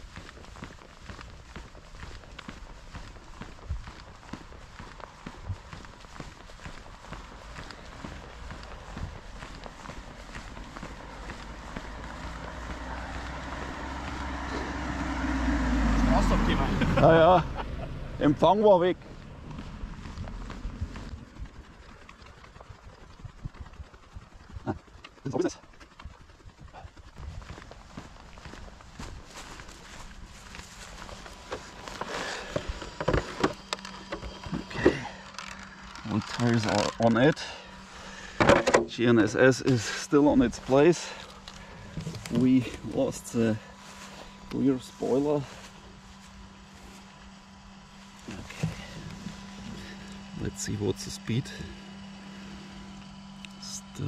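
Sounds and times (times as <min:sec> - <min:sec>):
faint rumble: 0:00.0 - 0:54.0
footsteps on asphalt: 0:00.0 - 0:54.0
steady low hum: 0:00.0 - 0:54.0
wind rumbling on microphone: 0:19.1 - 0:24.8, 0:26.0 - 0:30.4.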